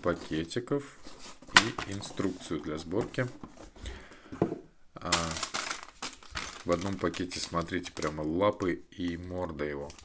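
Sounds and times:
plastic bag crinkling: 5.1s - 10.0s.

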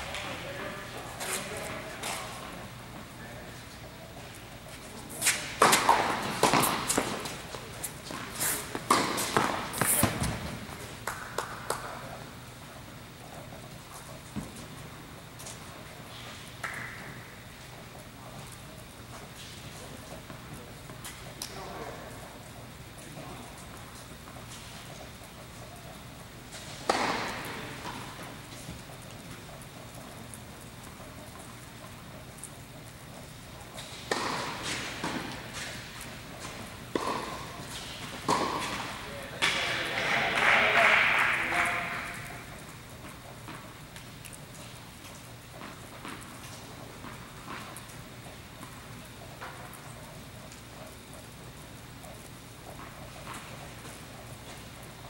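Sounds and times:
footsteps on hard court: 0.0s - 55.0s
steady low hum: 0.0s - 55.0s.

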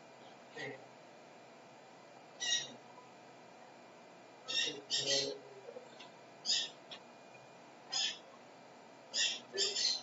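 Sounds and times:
bird chirping: 2.4s - 2.8s, 4.5s - 8.4s, 9.1s - 10.0s.

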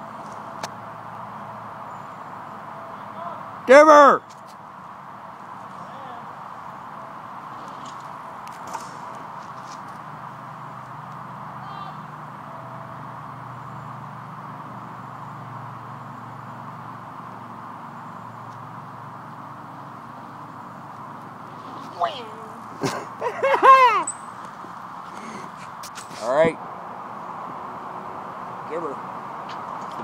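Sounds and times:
outdoor background noise: 0.0s - 30.0s.

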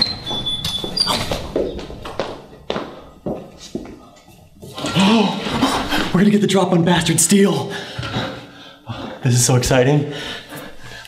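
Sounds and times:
hurried footsteps on hard floor: 0.0s - 4.8s.

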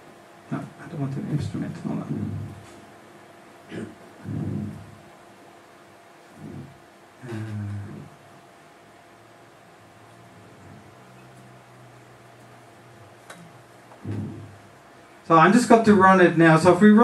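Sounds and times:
low room hum: 0.0s - 17.0s
man speaking: 0.5s - 2.6s, 15.3s - 17.0s.

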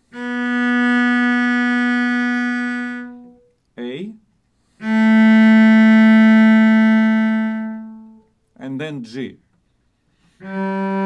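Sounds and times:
cello bowing a long note: 0.0s - 3.5s, 4.7s - 8.3s, 10.3s - 11.0s.

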